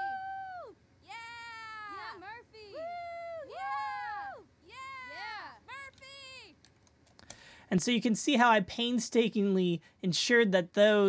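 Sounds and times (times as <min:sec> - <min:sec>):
women yelling and cheering: 0:00.0 - 0:06.6.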